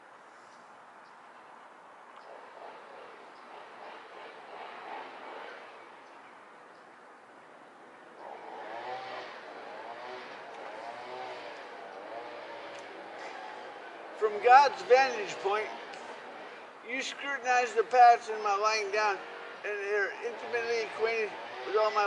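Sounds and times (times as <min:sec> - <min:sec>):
background traffic noise: 0:00.0 - 0:22.0.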